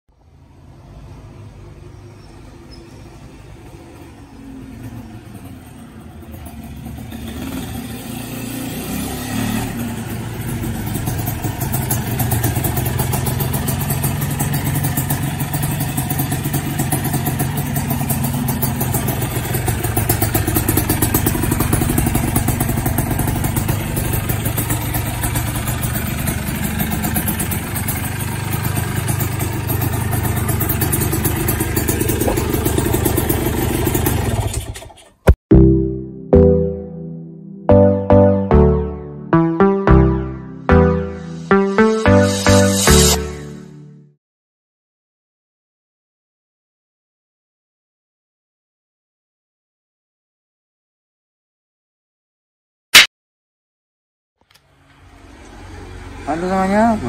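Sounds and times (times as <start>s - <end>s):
two-stroke motorcycle engine running: 4.6s - 35.1s.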